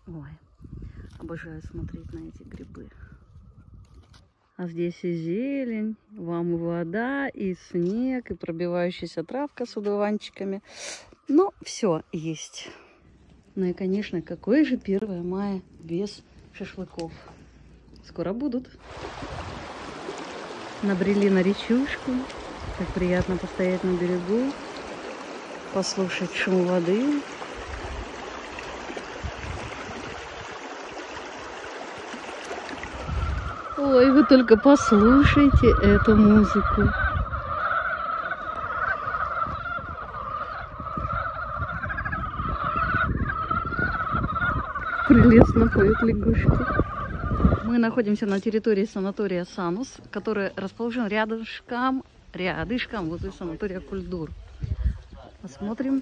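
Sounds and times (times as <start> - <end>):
river rushing over stones: 18.8 - 33.2
frogs trilling in chorus: 32.9 - 48.0.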